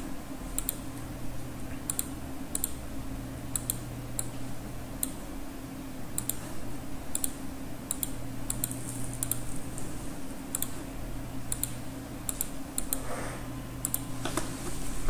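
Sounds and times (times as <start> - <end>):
steady low hum: 0.0 - 15.0.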